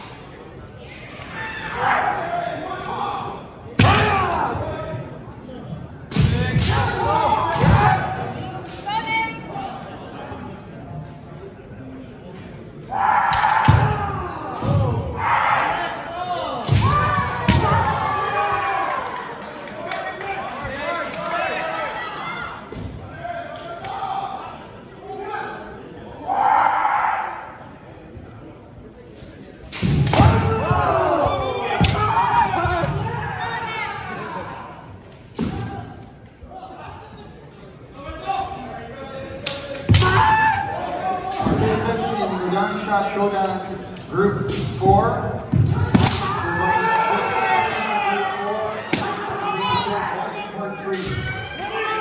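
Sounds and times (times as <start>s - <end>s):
people shouting: 1.2s - 4.8s, 6.5s - 9.3s, 12.9s - 19.3s, 26.2s - 27.6s, 30.0s - 36.0s, 39.8s - 42.2s, 45.7s - 52.0s.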